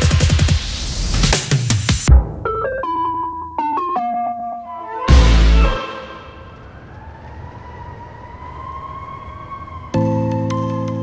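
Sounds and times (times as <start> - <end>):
electronic beat: 0.0 - 2.4
hissing wash: 6.3 - 10.6.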